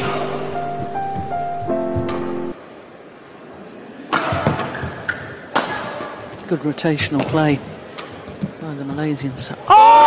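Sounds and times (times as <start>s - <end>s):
quiet hall noise: 0.0s - 10.0s.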